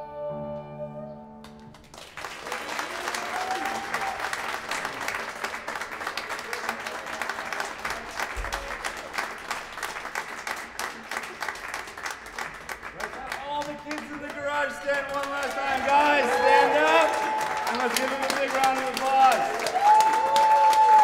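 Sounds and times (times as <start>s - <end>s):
audience applauding: 1.4s - 21.0s
voices in crowd: 3.2s - 21.0s.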